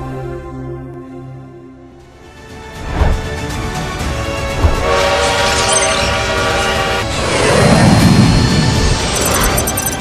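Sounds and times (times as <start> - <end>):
steam locomotive whistle: 4.8 - 7.2.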